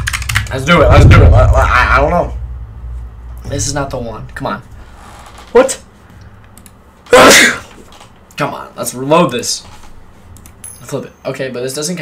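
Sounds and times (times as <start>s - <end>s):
man sneezing: 7.1s - 7.8s.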